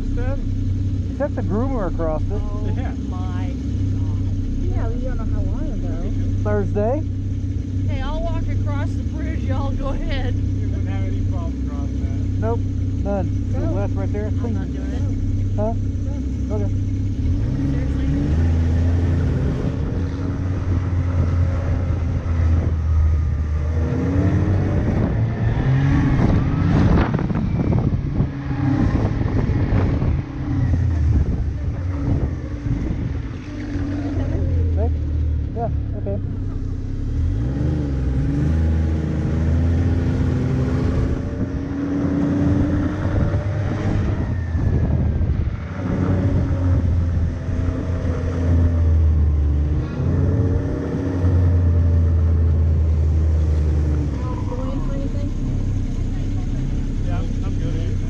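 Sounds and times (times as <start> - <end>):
snowmobile engine revving: 0.0 - 7.1, 7.8 - 58.0.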